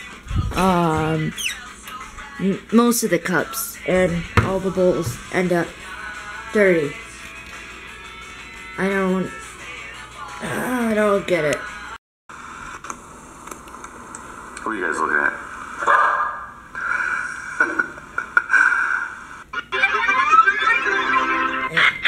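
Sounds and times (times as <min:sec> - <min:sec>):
music through phone speaker: 0:00.0 - 0:12.0, 0:19.5 - 0:22.0.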